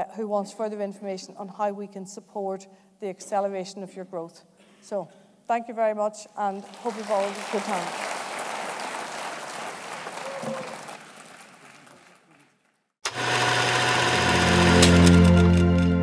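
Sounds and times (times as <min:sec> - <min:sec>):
audience applauding: 0:06.6 - 0:15.6.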